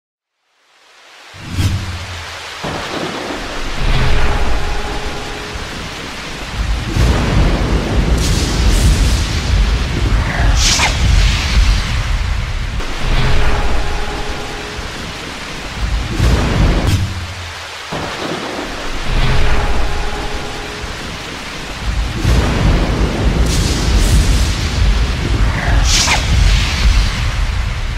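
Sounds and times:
heavy rain: 0:00.3 - 0:27.9
rolling thunder: 0:01.5 - 0:17.3, 0:17.9 - 0:27.9.

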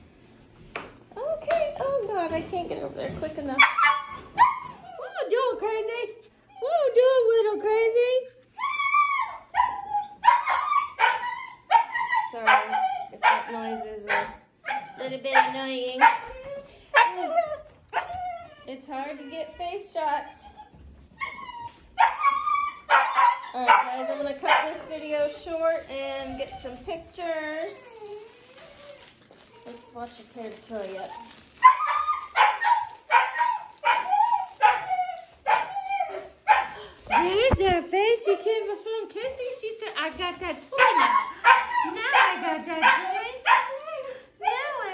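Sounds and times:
puppy barking: 0:03.6 - 0:04.8, 0:09.1 - 0:17.3, 0:22.0 - 0:25.0, 0:31.6 - 0:37.5, 0:40.8 - 0:43.8.

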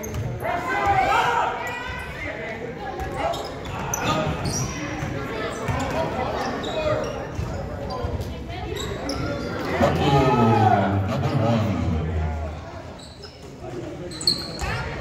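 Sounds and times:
players and spectators calling out: 0:00.0 - 0:15.0.

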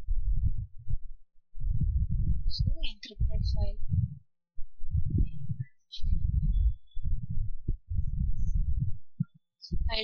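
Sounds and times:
low fluttering microphone rumble: 0:00.0 - 0:10.0.

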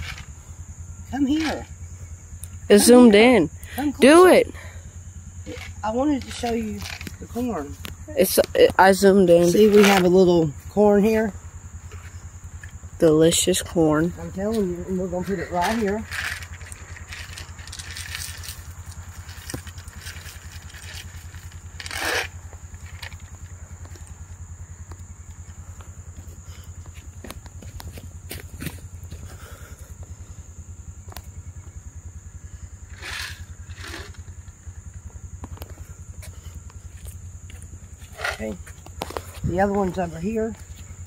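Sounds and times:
low hum: 0:00.0 - 0:41.0.

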